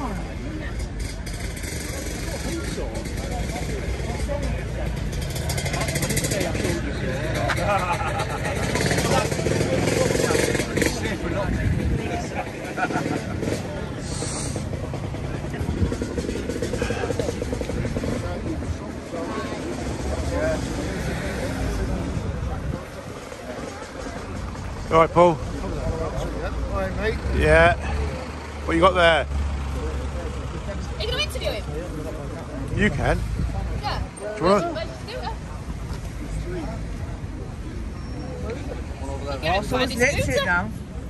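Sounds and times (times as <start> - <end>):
people chattering: 0.0 - 41.0.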